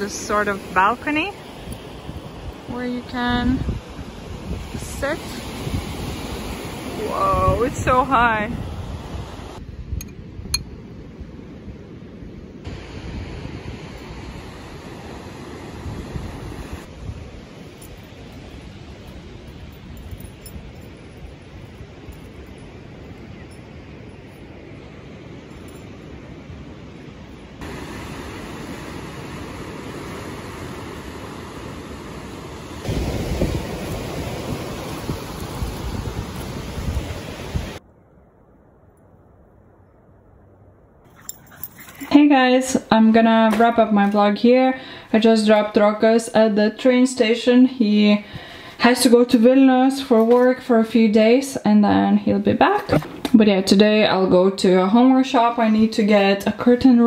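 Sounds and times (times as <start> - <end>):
sea surf washing on shore: 0.0 - 37.8
wind buffeting microphone: 0.0 - 38.3.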